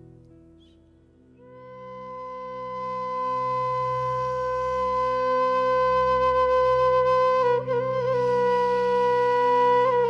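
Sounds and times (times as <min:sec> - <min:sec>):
flute long note: 0:01.4 - 0:10.0.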